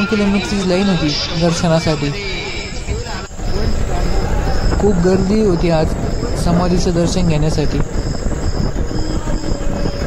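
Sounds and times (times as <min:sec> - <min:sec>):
mechanical rumble: 0:00.0 - 0:10.0.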